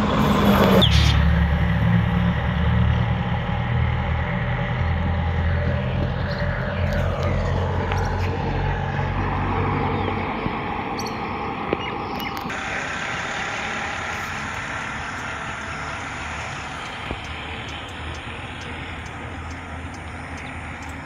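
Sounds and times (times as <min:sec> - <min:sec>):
road noise hiss: 0:00.0 - 0:21.0
vehicle engine hum passing: 0:00.0 - 0:21.0.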